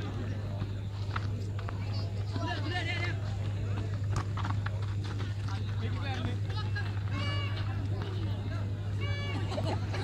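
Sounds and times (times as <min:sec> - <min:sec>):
crowd voices: 0:00.0 - 0:10.0
steady low hum: 0:00.0 - 0:10.0.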